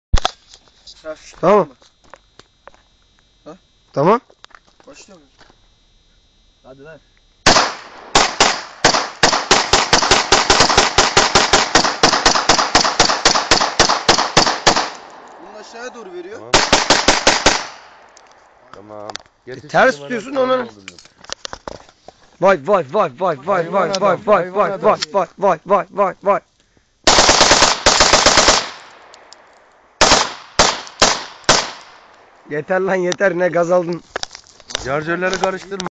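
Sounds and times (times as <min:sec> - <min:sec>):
pistol shots: 0:07.4 - 0:15.4, 0:16.5 - 0:18.1, 0:27.1 - 0:29.4, 0:30.0 - 0:32.3
rapid sharp bangs: 0:07.5 - 0:15.2, 0:16.5 - 0:18.0, 0:27.1 - 0:28.9, 0:30.0 - 0:32.1.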